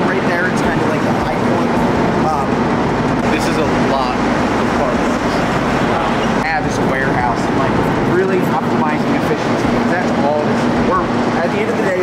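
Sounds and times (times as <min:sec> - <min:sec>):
machinery hum and rumble: 0:00.0 - 0:12.0
voices talking: 0:00.0 - 0:12.0.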